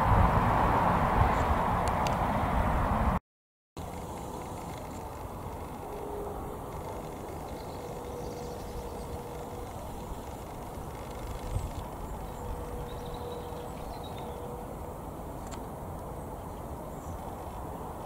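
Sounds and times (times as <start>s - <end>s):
distant road traffic rumble: 0.0s - 3.2s, 3.8s - 18.0s
faint hum: 3.8s - 17.9s.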